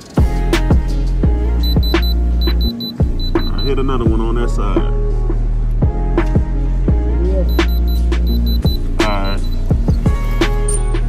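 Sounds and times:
hip-hop beat with heavy bass: 0.1 - 11.0
tester buzzer short high beeps: 1.6 - 3.8, 7.5 - 9.8.

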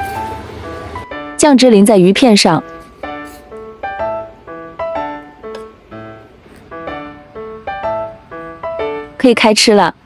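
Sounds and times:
gentle melody of struck notes: 2.6 - 9.2.

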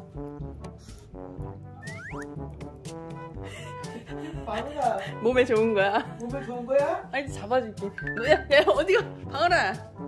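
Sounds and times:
cute bouncy background music: 0.0 - 10.0.

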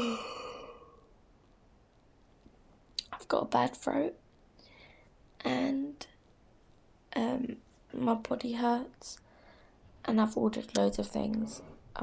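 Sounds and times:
woman yawning: 0.0 - 0.9.

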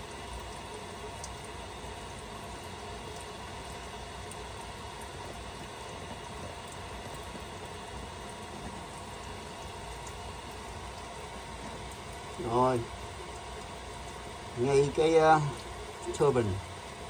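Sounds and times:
muffled hose water hissing: 0.0 - 17.0.

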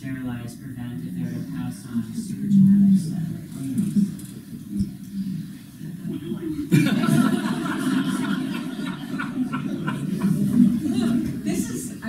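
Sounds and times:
people laughing and murmuring: 1.2 - 12.0.

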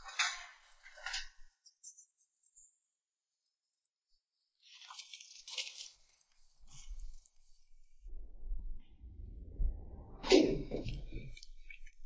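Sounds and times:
paper rustling and crinkling: 4.6 - 7.6.

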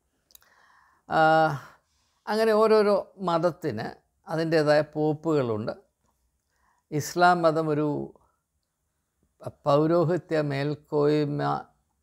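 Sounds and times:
soft intake of breath: 0.4 - 1.1.

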